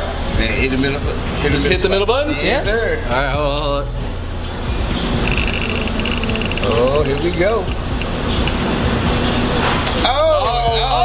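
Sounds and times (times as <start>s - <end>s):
rapid ticking of spinner app: 5.2s - 8.7s.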